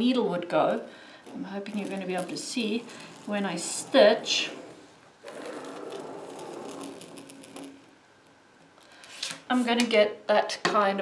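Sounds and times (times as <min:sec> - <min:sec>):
drawing wheel scratching on paper: 0:01.2 - 0:08.0.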